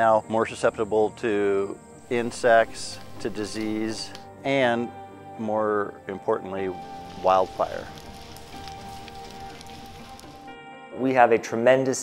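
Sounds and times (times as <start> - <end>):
soft background music: 0.0 - 12.0
flames crackling: 2.0 - 4.3, 6.6 - 10.6.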